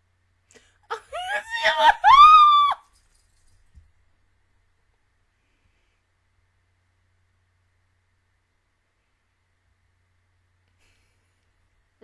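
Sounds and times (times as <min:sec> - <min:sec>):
woman squealing: 0:00.9 - 0:02.8.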